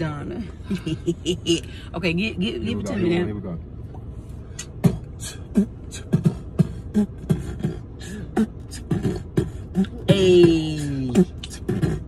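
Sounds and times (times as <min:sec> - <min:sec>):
person beatboxing: 0:04.6 - 0:12.0.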